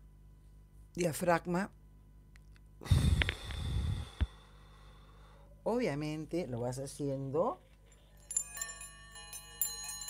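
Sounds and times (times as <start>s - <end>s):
small metal chimes ringing: 7.9s - 10.0s.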